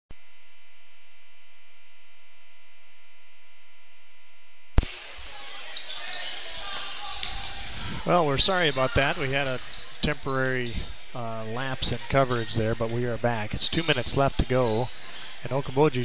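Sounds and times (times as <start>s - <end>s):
electrical hum of held tones: 0.1s - 5.2s
crowd noise in large hall: 4.8s - 16.0s.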